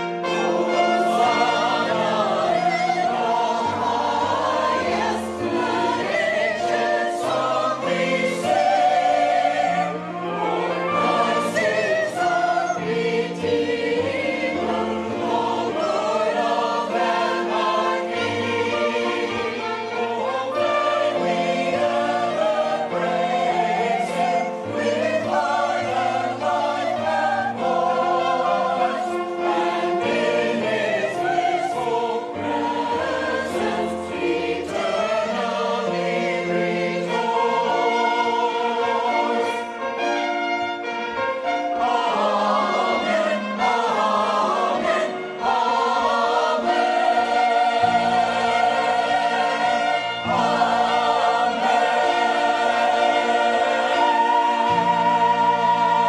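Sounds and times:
choir singing a hymn: 0.0s - 56.0s
piano accompaniment: 0.0s - 56.0s.

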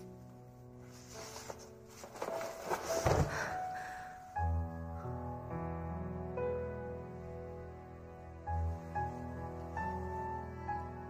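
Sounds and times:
rustling: 0.0s - 3.7s
soft piano music: 0.0s - 11.0s.

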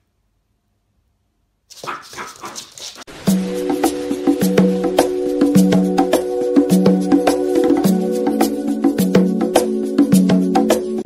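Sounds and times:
music with held notes: 3.3s - 11.0s.

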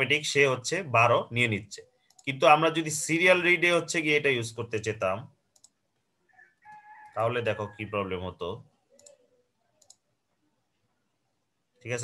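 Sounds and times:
person speaking: 0.0s - 5.3s, 7.2s - 9.2s
keyboard clicks: 5.5s - 5.8s, 9.8s - 10.0s.

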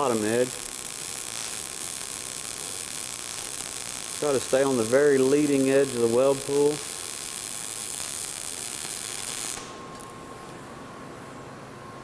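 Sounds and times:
welding arc crackling: 0.0s - 10.2s
faint steady hiss: 0.0s - 10.6s.

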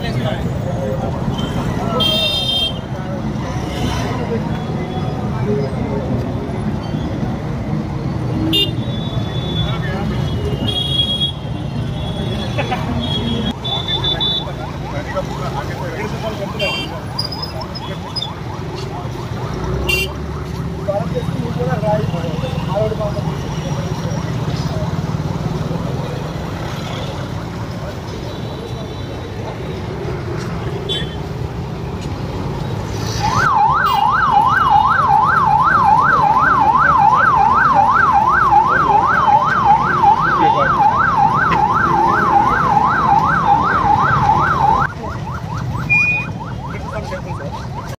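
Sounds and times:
crowd chatter: 0.0s - 47.9s
street traffic: 0.0s - 47.9s
police siren yelping: 14.5s - 19.6s, 33.2s - 47.9s.

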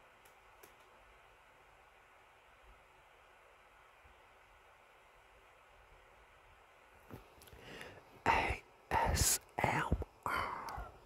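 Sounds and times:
man whispering: 8.2s - 11.0s.

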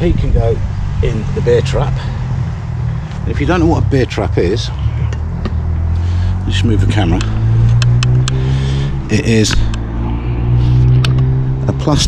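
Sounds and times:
low engine drone: 0.0s - 12.0s.

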